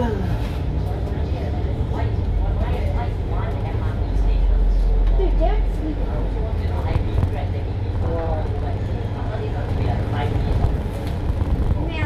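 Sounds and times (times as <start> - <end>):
people talking: 0.0 - 11.0, 11.7 - 12.0
bus engine low rumble: 0.0 - 12.0.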